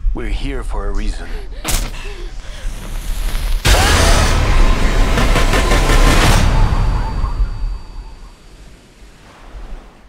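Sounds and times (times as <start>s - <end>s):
pulsing hits: 1.7s - 8.8s
cinematic rumbling roar: 3.6s - 8.4s.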